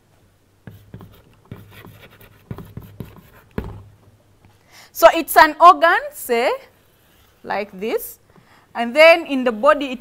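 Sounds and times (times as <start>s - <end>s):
chalk scratching strokes: 0.7s - 3.8s, 6.7s - 7.7s
chalk tapping on chalkboard: 0.7s - 3.9s.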